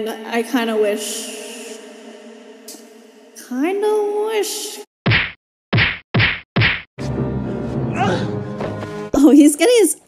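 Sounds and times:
film score: 0:00.0 - 0:05.4, 0:06.2 - 0:10.0
sharp whacks of blows: 0:05.1 - 0:06.9.

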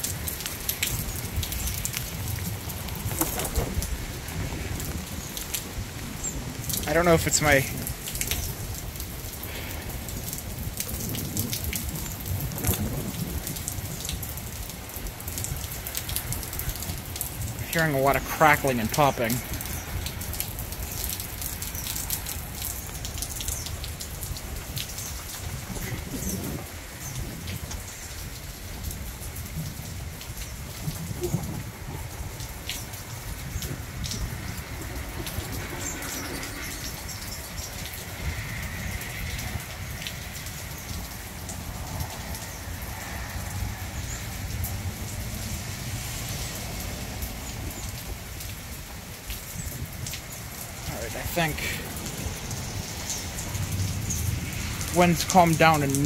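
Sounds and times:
wind rumbling on microphone: 0:00.0 - 0:17.9, 0:19.4 - 0:56.0
heavy rain: 0:00.0 - 0:56.0.

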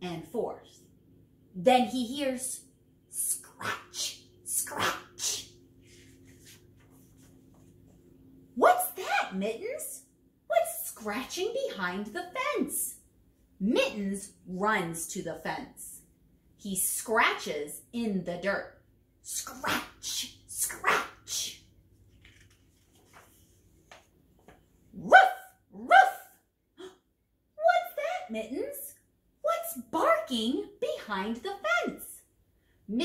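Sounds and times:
faint steady hum: 0:00.0 - 0:19.4
book page turning: 0:05.8 - 0:07.9, 0:21.9 - 0:24.7.

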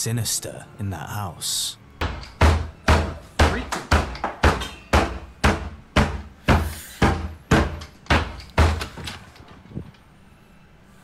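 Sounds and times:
heavy banging on a door: 0:02.0 - 0:09.4.

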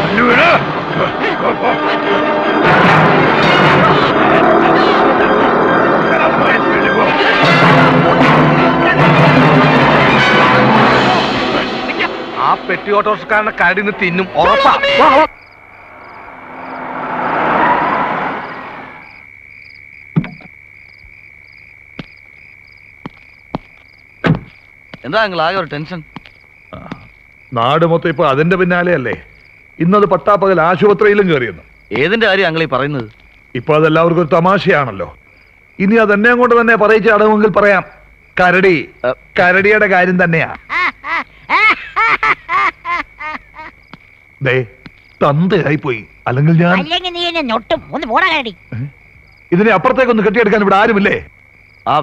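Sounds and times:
man laughing: 0:00.8 - 0:02.1, 0:40.5 - 0:43.8
crickets trilling: 0:10.7 - 0:52.0
frogs chirping: 0:10.8 - 0:52.0
whoosh: 0:15.3 - 0:19.2.

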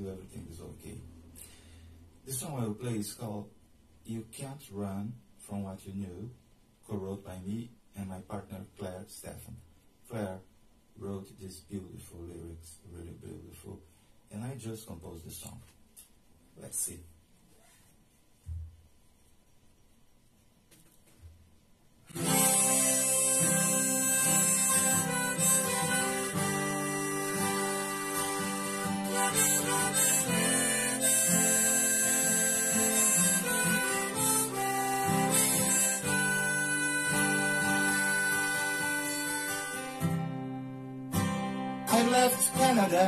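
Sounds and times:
harmonica melody: 0:22.1 - 0:43.0
strummed acoustic guitar: 0:22.1 - 0:43.0.

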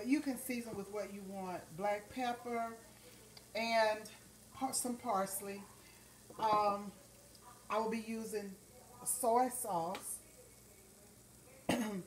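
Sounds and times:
woman coughing: 0:11.7 - 0:12.0.

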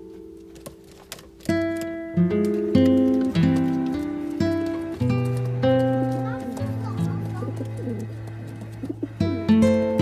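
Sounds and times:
background music with held notes: 0:00.0 - 0:10.0
pigeons cooing: 0:05.2 - 0:10.0.

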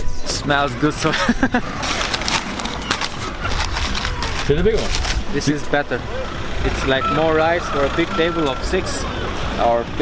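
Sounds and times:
newspaper rustling and crinkling: 0:01.4 - 0:05.4.

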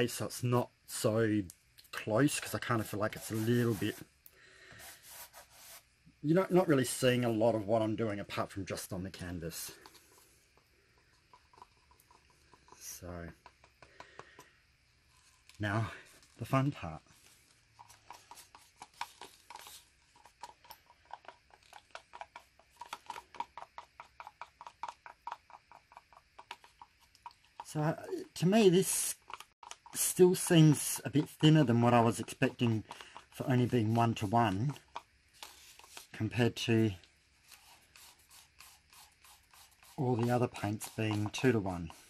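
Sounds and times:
stir stick scraping plastic cup: 0:02.3 - 0:04.1, 0:08.8 - 0:42.0.

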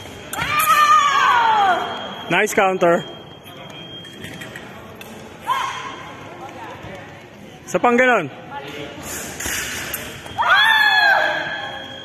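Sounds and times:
sports hall background noise: 0:00.0 - 0:12.0.

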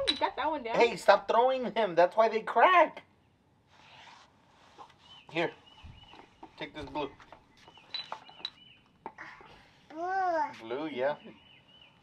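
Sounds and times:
faint bird chirps: 0:04.8 - 0:09.8, 0:10.9 - 0:12.0.

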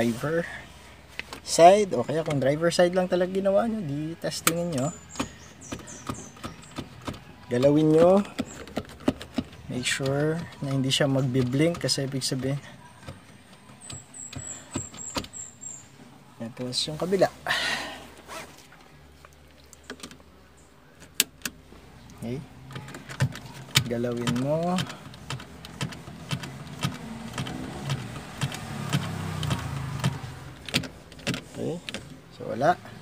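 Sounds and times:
seatbelt buckle clicks and knocks: 0:04.3 - 0:15.5, 0:22.7 - 0:32.2.

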